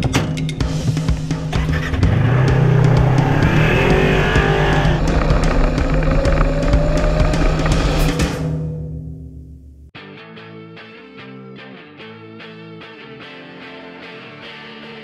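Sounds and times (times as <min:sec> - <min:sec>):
drum-backed music: 0:00.0 - 0:08.6
off-road vehicle engine running: 0:00.7 - 0:08.6.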